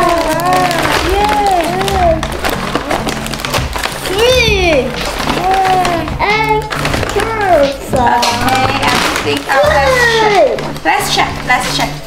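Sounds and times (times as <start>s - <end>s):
background music: 0.0s - 12.0s
paper bag crinkling: 0.0s - 12.0s
plastic packets crinkling: 0.0s - 12.0s.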